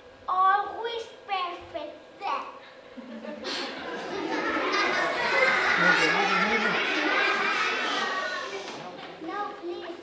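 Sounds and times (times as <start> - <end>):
young children talking: 0.3 - 2.6, 4.0 - 10.0.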